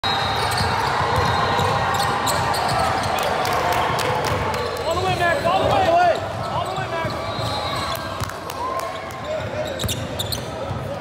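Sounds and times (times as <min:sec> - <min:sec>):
basketball bouncing: 0:00.5 - 0:03.2.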